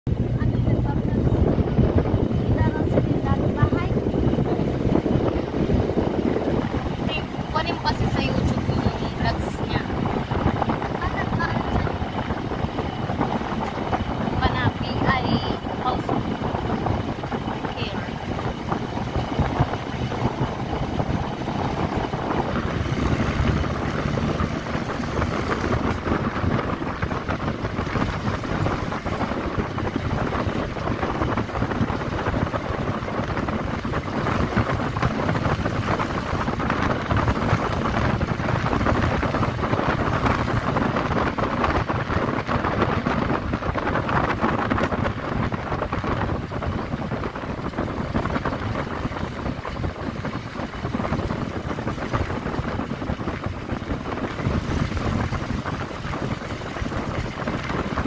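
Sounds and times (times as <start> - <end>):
vehicle engine and road noise: 0.0 - 58.0
wind buffeting microphone: 0.1 - 58.0.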